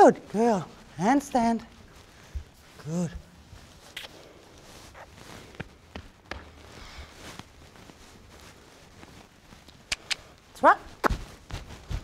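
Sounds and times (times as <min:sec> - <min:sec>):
footsteps of person and horse: 0:03.6 - 0:09.4, 0:11.0 - 0:12.0.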